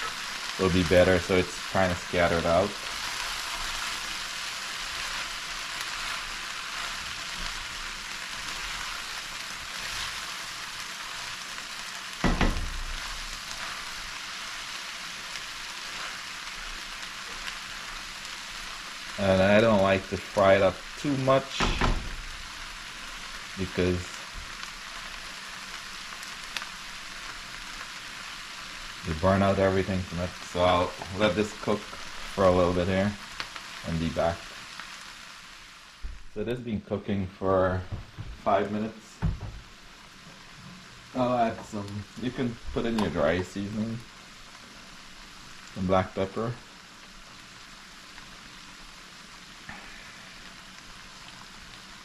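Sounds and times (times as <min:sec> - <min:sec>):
food sizzling in a pan: 0:00.0 - 0:52.0
spatula stirring in pan: 0:02.5 - 0:19.2
brief thump: 0:12.2 - 0:12.8, 0:39.2 - 0:39.7.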